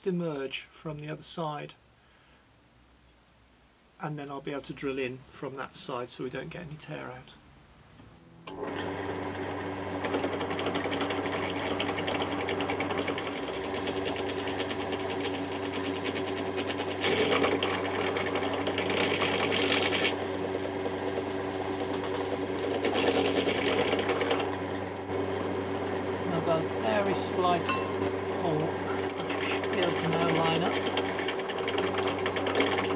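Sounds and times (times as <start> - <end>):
drill press boring into wood: 10.0 - 24.5.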